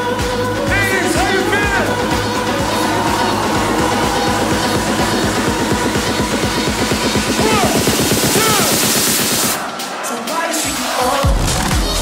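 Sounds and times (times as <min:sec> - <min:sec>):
electronic dance music: 0:00.0 - 0:12.0
fast drum roll: 0:03.0 - 0:09.6.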